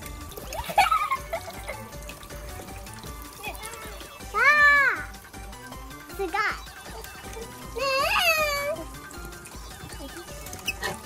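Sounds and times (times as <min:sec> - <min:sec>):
background music: 0:00.0 - 0:11.0
water trickling down plastic chutes: 0:00.0 - 0:11.0.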